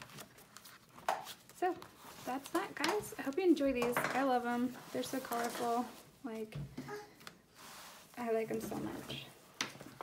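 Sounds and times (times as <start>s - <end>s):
paper pages rustling: 0.0s - 6.1s.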